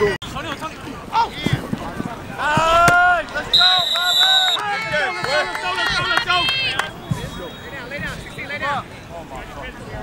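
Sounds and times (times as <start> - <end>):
players shouting and cheering: 0.0 - 9.7
high whistle: 3.5 - 4.6.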